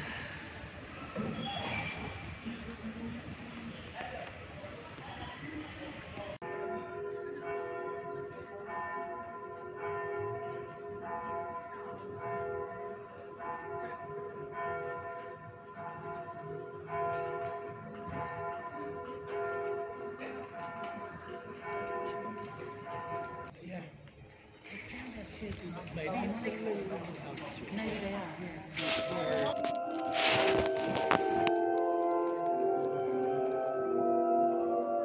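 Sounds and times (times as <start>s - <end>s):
church bells ringing: 6.4s - 23.5s, 28.8s - 35.0s.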